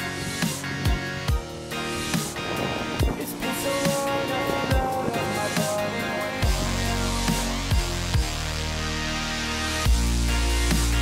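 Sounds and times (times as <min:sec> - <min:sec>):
background music with kick drum: 0:00.0 - 0:08.8, 0:09.6 - 0:11.0.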